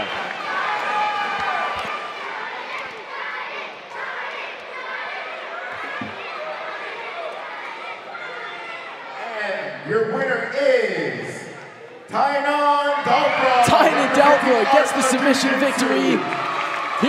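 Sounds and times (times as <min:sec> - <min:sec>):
arena crowd cheering and chattering: 0:00.0 - 0:17.0
children shouting: 0:00.4 - 0:09.2.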